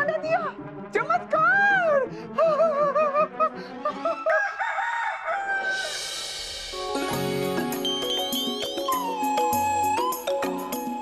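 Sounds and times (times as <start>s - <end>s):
rooster crowing: 4.3s - 6.2s.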